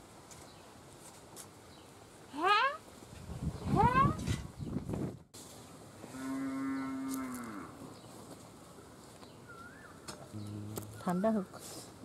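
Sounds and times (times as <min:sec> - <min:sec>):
cow mooing: 0:06.1 - 0:07.8.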